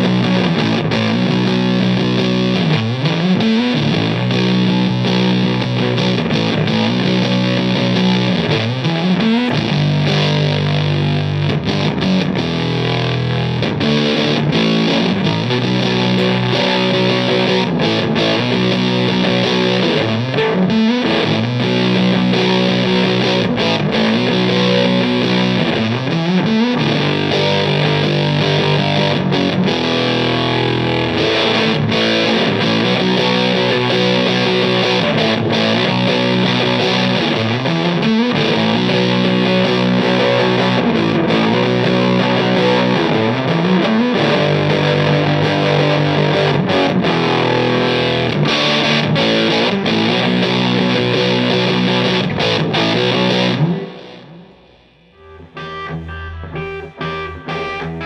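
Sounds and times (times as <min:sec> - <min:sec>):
fuzz distorted electric guitar: 0:00.0 - 0:58.0.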